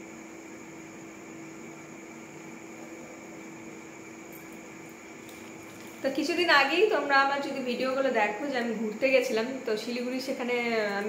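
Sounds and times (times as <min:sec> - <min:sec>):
even hiss: 0:00.0 - 0:11.0
faint low hum: 0:00.0 - 0:11.0.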